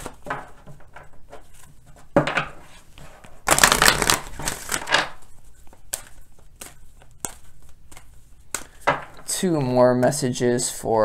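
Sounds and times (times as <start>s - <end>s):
cards being shuffled: 3.4s - 8.8s.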